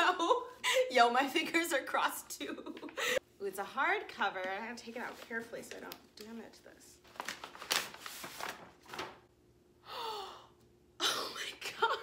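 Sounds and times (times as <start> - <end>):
paper bag rustling and crinkling: 4.9 - 5.8, 7.0 - 9.3.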